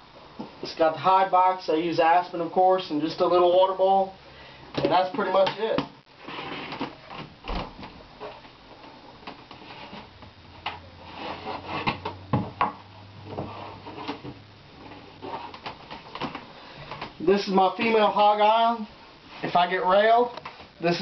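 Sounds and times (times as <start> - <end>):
plastic tubs sliding scrapes: 6.2 - 7.0, 9.5 - 10.1, 11.0 - 12.2, 13.3 - 16.0.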